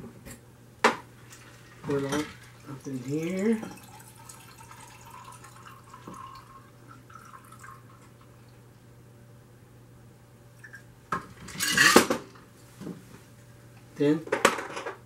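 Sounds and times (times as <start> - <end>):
liquid poured into glass: 1.3 - 8.0
clatter of glassware and metal: 1.8 - 2.4, 11.4 - 12.3.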